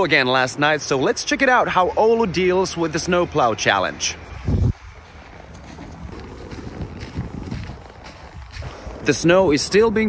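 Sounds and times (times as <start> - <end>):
wind rumbling on microphone: 0.0 - 10.0
footsteps in snow: 0.1 - 10.0.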